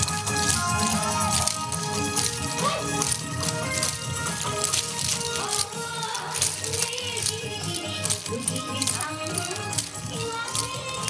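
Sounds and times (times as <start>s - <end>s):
loud dance music: 0.0s - 11.0s
wooden clappers clacking: 0.0s - 11.0s.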